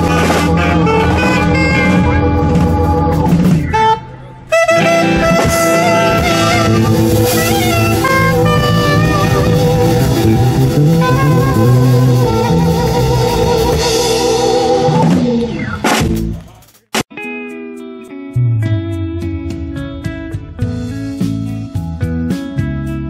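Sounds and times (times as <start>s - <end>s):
saxophone melody: 0.0s - 15.0s
plucked guitar notes: 0.0s - 16.5s, 17.1s - 23.0s
live jazz reggae band: 0.0s - 23.0s.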